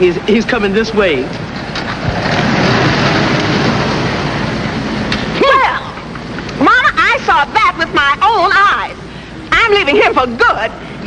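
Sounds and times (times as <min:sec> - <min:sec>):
car driving past: 0:01.5 - 0:05.4.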